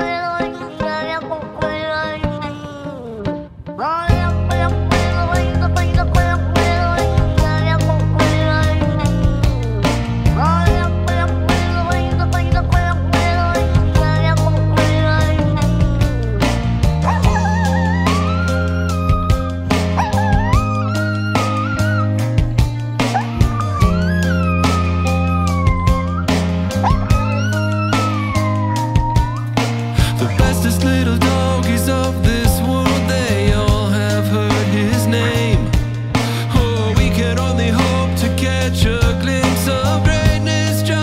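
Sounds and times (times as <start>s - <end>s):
rock band playing: 0.0s - 41.0s
sliding falling note: 16.2s - 29.8s
dog howling: 17.0s - 22.4s, 23.0s - 29.6s.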